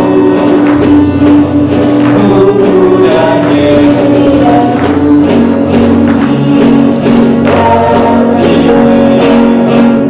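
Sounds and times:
guitars: 0.0s - 10.0s.

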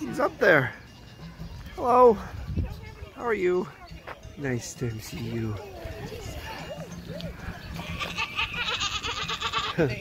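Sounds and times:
soft background voices: 0.0s - 10.0s
goat bleating: 7.7s - 10.0s.

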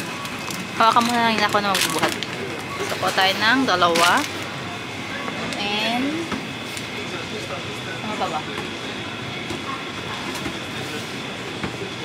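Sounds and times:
continuous hum: 0.0s - 12.0s.

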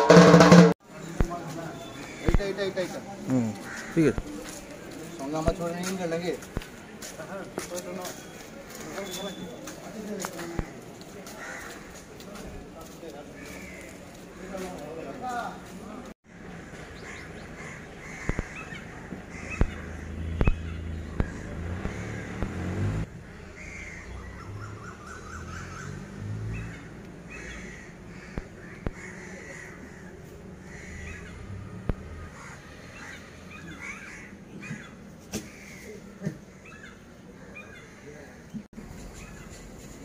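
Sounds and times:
crows cawing: 3.3s - 4.6s, 10.3s - 15.5s, 16.3s - 26.0s, 26.6s - 38.5s.

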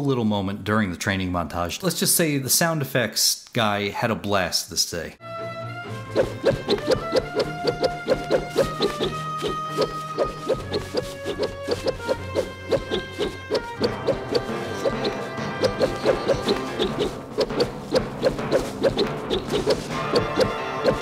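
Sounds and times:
background music sustained notes: 5.2s - 21.0s
blade whooshes: 6.1s - 21.0s.

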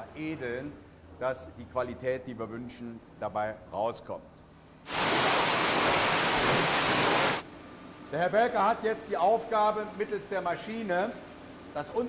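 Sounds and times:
water splashing and churning: 4.9s - 7.4s.

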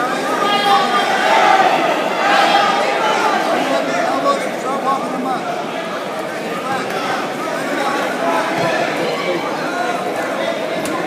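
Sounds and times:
crowd chattering in echoing hall: 0.0s - 11.0s.

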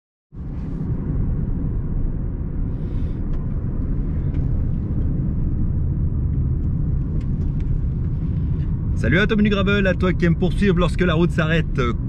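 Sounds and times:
car road noise from inside: 0.4s - 12.0s.

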